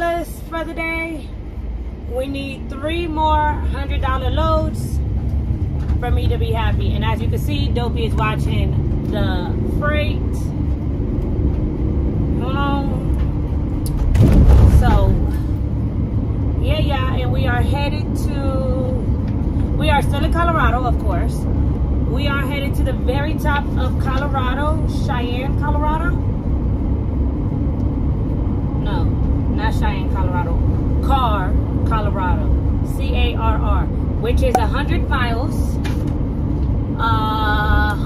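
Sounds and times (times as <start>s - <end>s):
road and engine rumble in van: 0.0s - 38.0s.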